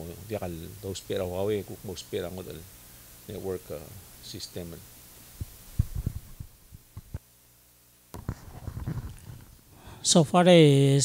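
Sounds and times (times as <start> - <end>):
microphone handling thumps: 5.4 - 7.2, 8.1 - 9.6.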